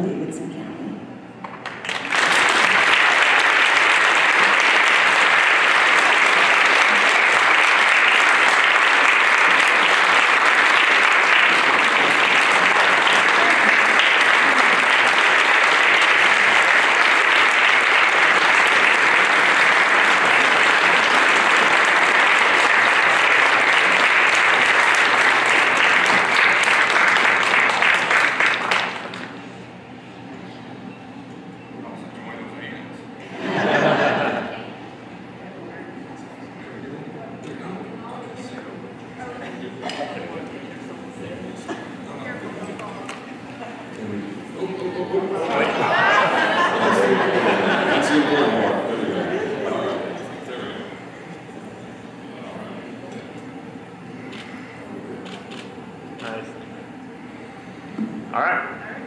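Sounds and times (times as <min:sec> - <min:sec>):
large audience applauding: 0:01.5 - 0:29.5, 0:45.3 - 0:50.4, 0:54.3 - 0:56.4.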